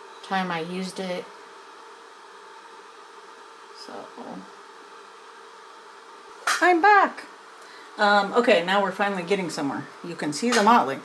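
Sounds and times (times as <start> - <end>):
faint hum: 0.0 - 11.0
room noise hiss: 0.0 - 11.0.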